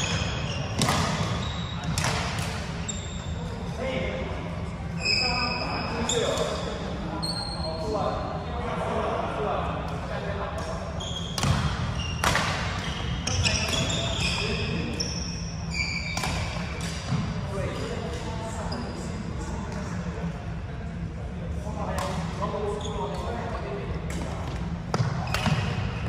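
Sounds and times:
athletic shoes squeaking on floor: 0.0 - 2.1, 2.8 - 3.5, 5.0 - 7.8, 11.0 - 17.2
racket hitting shuttlecock: 0.8 - 2.7, 11.4 - 12.7.

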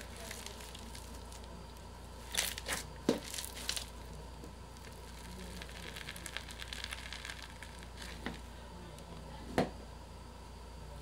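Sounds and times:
foam-bead slime crackling: 0.0 - 8.5.

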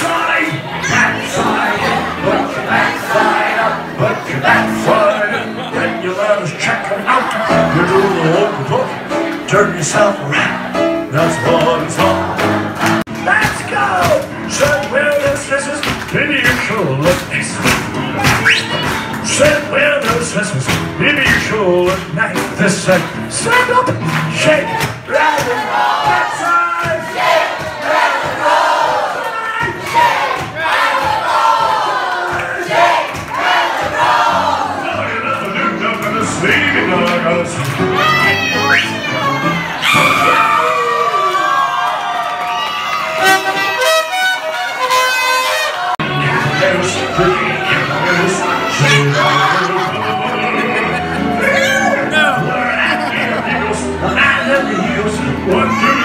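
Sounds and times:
crowd noise: 0.0 - 56.0
upright piano rock and roll tune: 0.0 - 56.0
live lounge music: 0.1 - 25.1, 33.5 - 41.4, 42.1 - 56.0
person singing: 0.7 - 12.4, 13.4 - 25.3, 32.3 - 40.9, 46.0 - 56.0.

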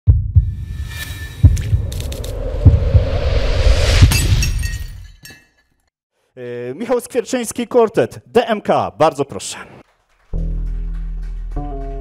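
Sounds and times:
glass shattering: 4.1 - 5.8.

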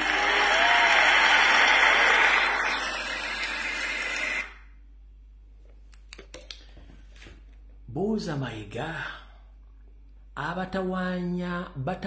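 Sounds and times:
audience applause: 0.0 - 4.7.

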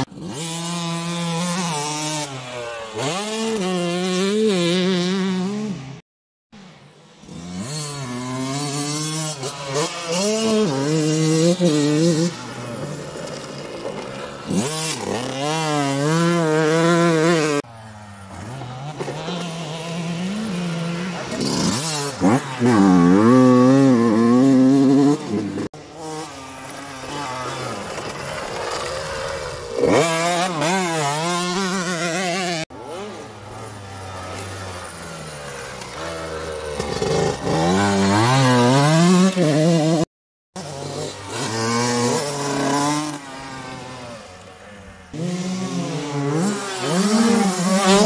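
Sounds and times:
dirt bike engine revving: 0.0 - 6.0, 6.6 - 48.0
distant dirt bike engine: 0.0 - 6.0, 6.6 - 48.0.

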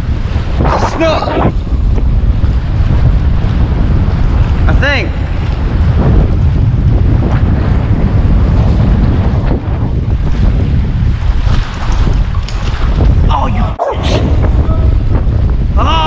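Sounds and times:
choppy water: 0.0 - 16.0
wind buffeting microphone: 0.0 - 16.0.

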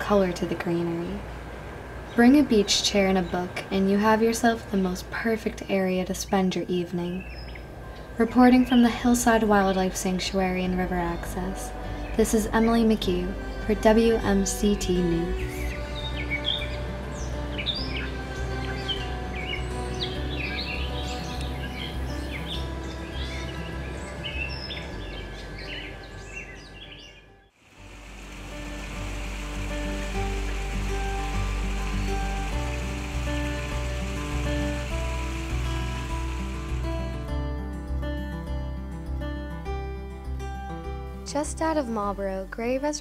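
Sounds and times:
soft background music: 0.0 - 1.4, 2.1 - 43.0
high hiss of outdoor ambience: 0.0 - 39.1
birds chirping and singing: 5.9 - 27.4, 28.0 - 37.1.

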